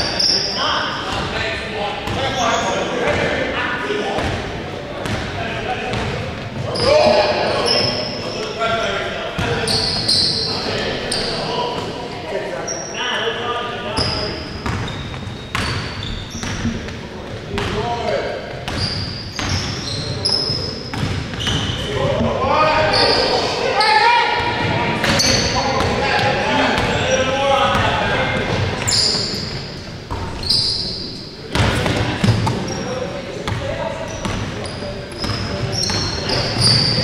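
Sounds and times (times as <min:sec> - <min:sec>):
sneakers squeaking: 0:00.0 - 0:03.6, 0:04.2 - 0:37.0
players calling out: 0:17.7 - 0:37.0
basketball bouncing: 0:20.9 - 0:22.2.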